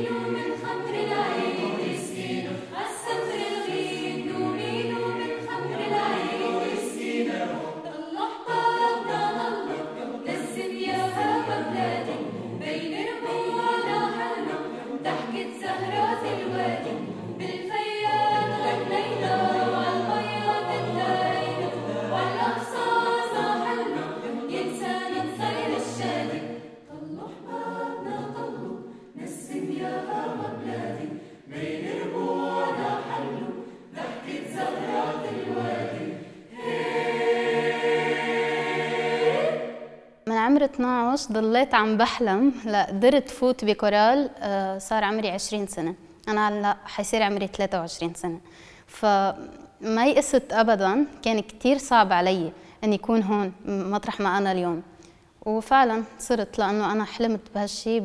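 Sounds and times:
mixed choir singing a cappella: 0.0 - 40.3.

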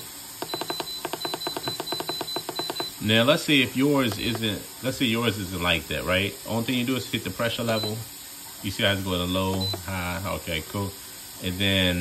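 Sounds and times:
short electronic beeps: 0.4 - 3.0, 7.7 - 8.0, 9.6 - 9.9.

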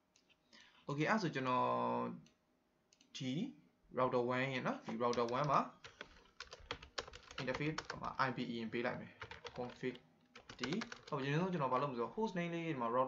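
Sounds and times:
person speaking: 3.0 - 13.0.

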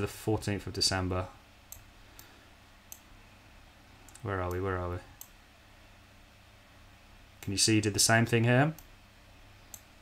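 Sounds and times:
low steady hiss: 0.0 - 10.0
computer mouse clicks: 1.7 - 2.3, 2.9 - 3.1, 9.7 - 9.9.

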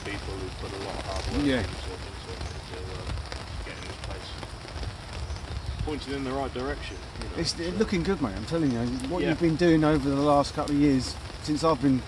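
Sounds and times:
rain tapping on umbrella: 0.0 - 12.0.

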